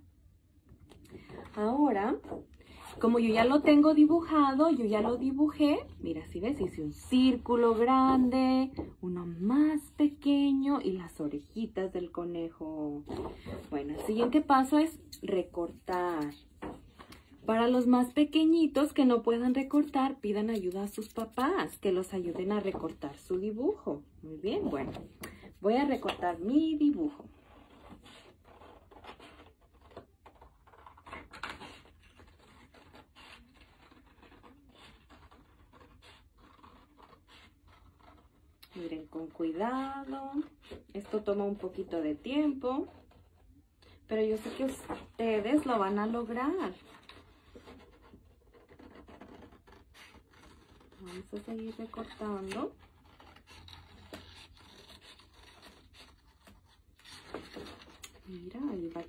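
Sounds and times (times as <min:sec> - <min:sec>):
scissors cutting paper: 0:13.6 - 0:16.5, 0:17.1 - 0:23.0, 0:25.8 - 0:43.3, 0:44.2 - 0:59.0.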